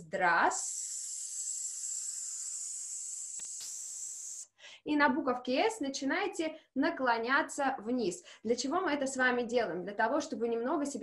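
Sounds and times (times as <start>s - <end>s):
woman hissing: 0.4s - 4.6s.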